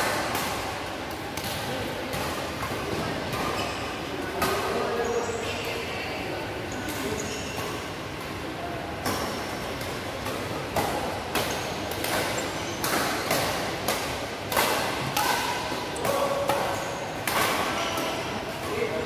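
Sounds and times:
rackets hitting shuttlecock: 0.0s - 3.7s, 9.0s - 19.0s
shoes squeaking on court: 3.4s - 4.0s, 6.7s - 7.6s, 11.4s - 13.3s.

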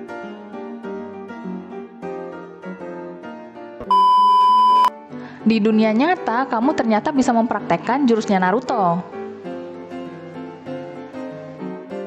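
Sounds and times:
keyboard background music: 0.0s - 12.0s
electronic beep: 3.9s - 4.9s.

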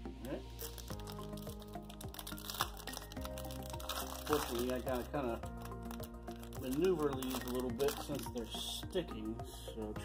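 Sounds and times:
soft instrumental music with chords: 0.0s - 10.0s.

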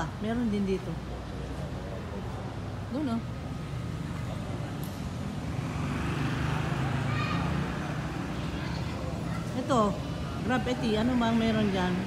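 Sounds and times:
motor vehicle traffic rumble: 0.0s - 12.0s.

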